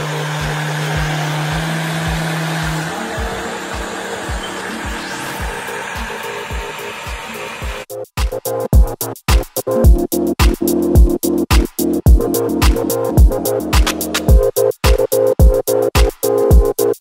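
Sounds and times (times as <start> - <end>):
blender motor whirring: 0.0 - 7.8.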